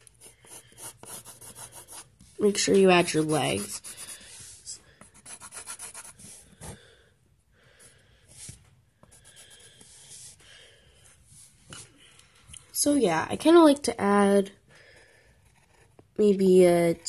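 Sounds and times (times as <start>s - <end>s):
pencil scratching on paper: 0.0s - 6.8s, 8.3s - 10.4s, 15.0s - 17.0s.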